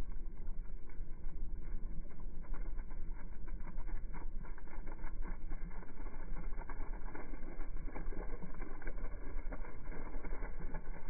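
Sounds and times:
constant low rumble: 0:00.0 - 0:11.0
water gushing from hose onto grass: 0:00.0 - 0:11.0.

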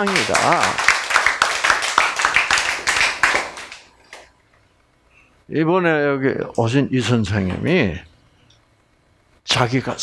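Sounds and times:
small audience clapping: 0:00.0 - 0:04.3.

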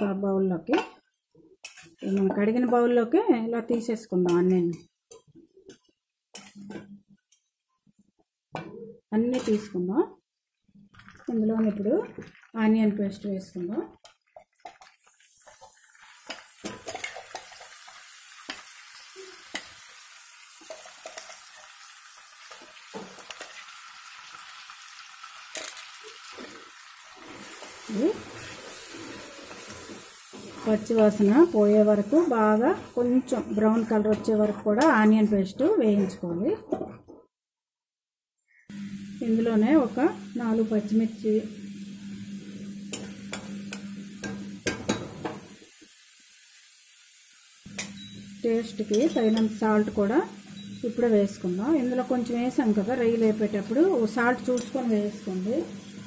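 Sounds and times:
paste sizzling in hot oil: 0:14.3 - 0:35.5, 0:38.7 - 0:56.0
spatula clinking and scraping pan: 0:27.2 - 0:37.0, 0:47.7 - 0:49.7, 0:54.4 - 0:55.0.

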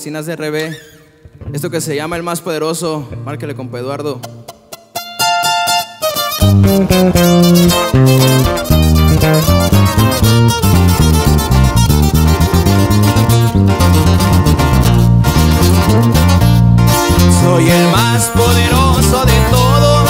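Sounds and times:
twelve-string acoustic guitar picking: 0:04.2 - 0:20.0
deep electric bass line: 0:06.4 - 0:20.0.

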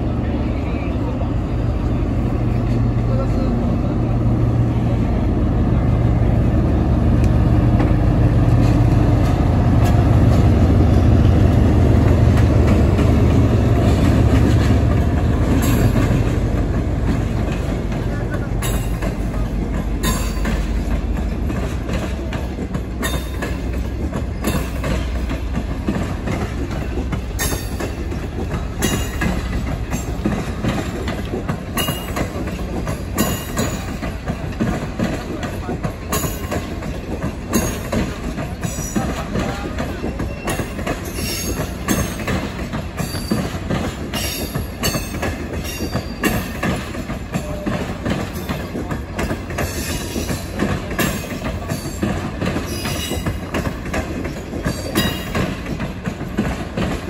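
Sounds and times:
diesel locomotive engine drone: 0:00.0 - 0:57.0
wheels clicking over rail joints: 0:07.2 - 0:57.0.

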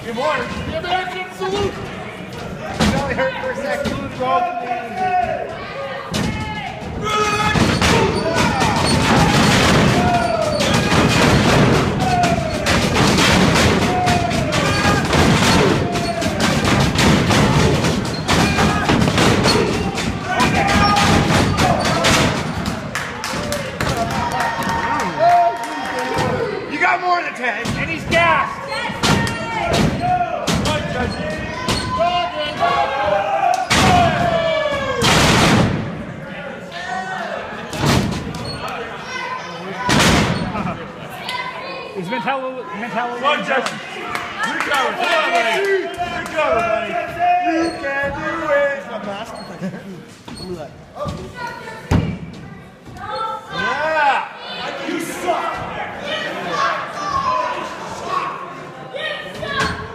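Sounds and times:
crowd shouting and chanting: 0:00.0 - 0:49.4, 0:50.9 - 0:59.9.

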